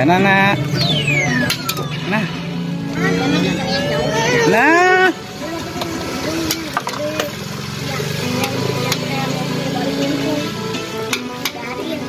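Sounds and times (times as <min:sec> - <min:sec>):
electronic game music: 0:00.0 - 0:05.4.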